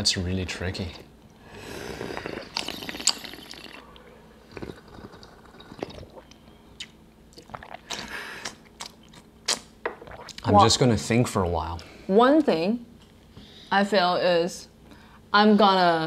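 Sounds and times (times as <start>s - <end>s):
person slurping tea: 1.6s - 6.4s, 7.4s - 8.6s.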